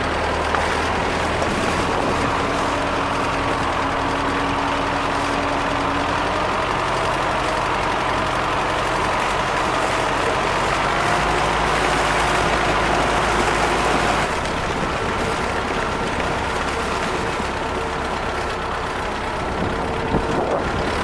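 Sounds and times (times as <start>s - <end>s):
propeller churning water: 0.0s - 21.0s
tractor engine running: 0.0s - 21.0s.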